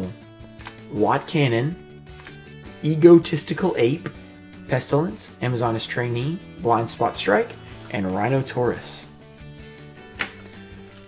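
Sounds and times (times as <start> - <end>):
quiet music with held notes: 0.0 - 11.0.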